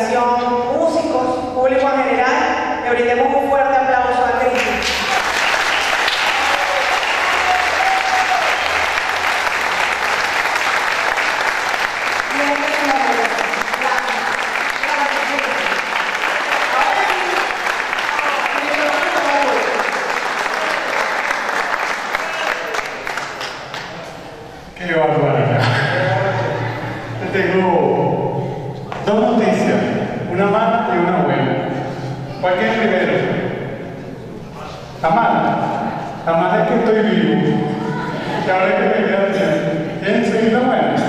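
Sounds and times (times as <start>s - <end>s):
audience applauding: 4.6s - 24.2s
crowd voices: 6.0s - 30.4s, 31.7s - 40.1s.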